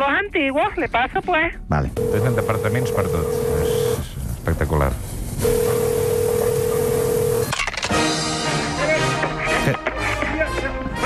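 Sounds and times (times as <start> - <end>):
telephone ringing tone: 2.0 - 4.1, 5.4 - 7.5.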